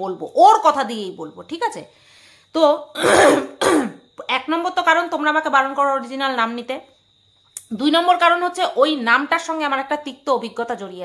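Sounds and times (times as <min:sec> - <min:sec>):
woman clearing her throat: 0:03.0 - 0:04.0.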